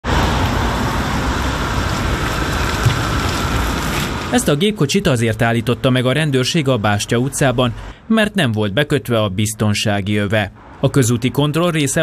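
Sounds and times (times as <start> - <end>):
traffic driving by: 0.0 - 12.0.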